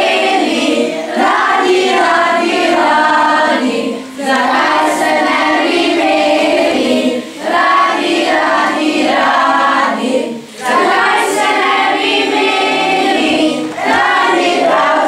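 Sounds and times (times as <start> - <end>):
children singing: 0.0 - 15.0.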